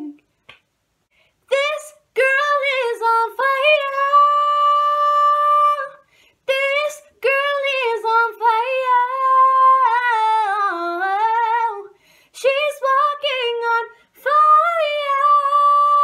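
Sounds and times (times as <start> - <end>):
woman singing without words: 1.2 - 16.0.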